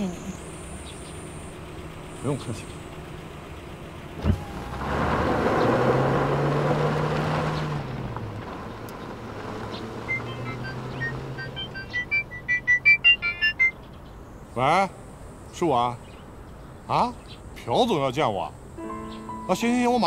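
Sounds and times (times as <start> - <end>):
car driving off: 0.0 - 18.0, 18.6 - 20.0
phone ringtone beeping melody: 10.1 - 13.8, 18.8 - 20.0.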